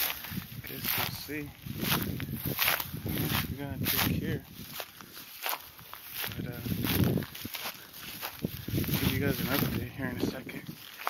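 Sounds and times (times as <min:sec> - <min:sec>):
footsteps in dry grass: 0:00.0 - 0:11.0.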